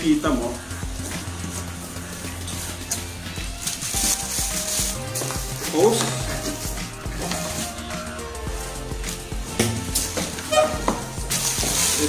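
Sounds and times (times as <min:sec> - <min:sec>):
background music: 0:00.0 - 0:12.0
plastic bag crinkling: 0:02.5 - 0:07.8, 0:11.2 - 0:12.0.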